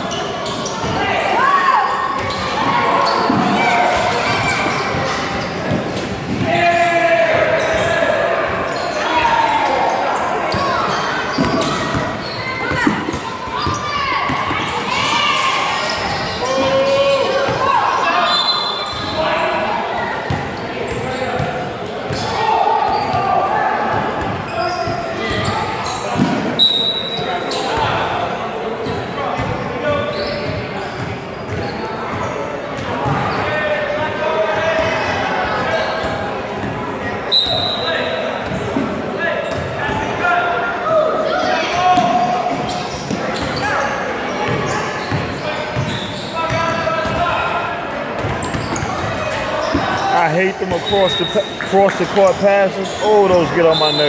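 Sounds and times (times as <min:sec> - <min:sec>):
echoing voices: 0:37.9 - 0:54.0.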